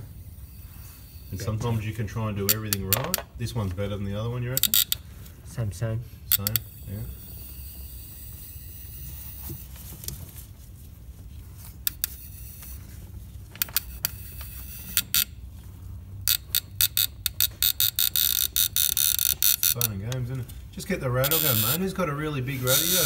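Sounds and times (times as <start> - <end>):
socket ratchet clicking: 2.4 - 3.3, 4.5 - 5.0, 6.3 - 8.6, 13.6 - 15.3, 16.2 - 19.9, 21.2 - 21.8, 22.6 - 23.0.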